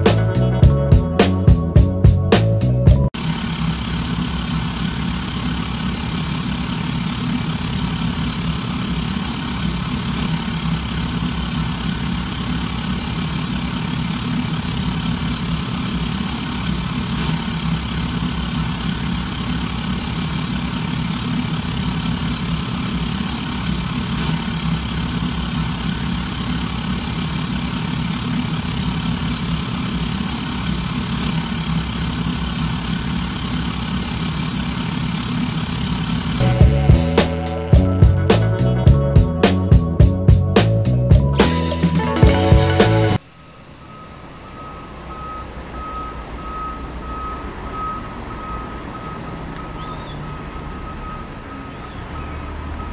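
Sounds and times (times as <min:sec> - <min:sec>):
engine idling: 0:00.0 - 0:52.9.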